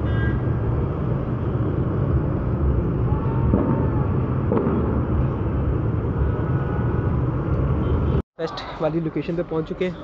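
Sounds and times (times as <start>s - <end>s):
dense city road traffic: 0.0s - 10.0s.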